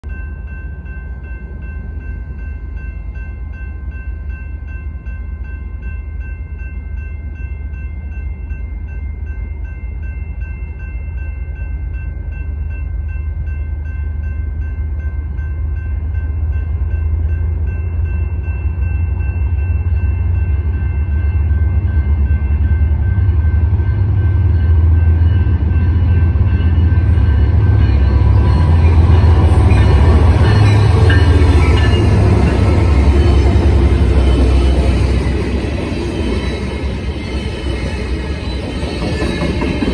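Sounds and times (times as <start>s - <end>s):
diesel locomotive engine rumble: 0.0s - 39.9s
train wheel and rail noise: 0.0s - 39.9s
steady high-pitched tone: 0.1s - 39.9s.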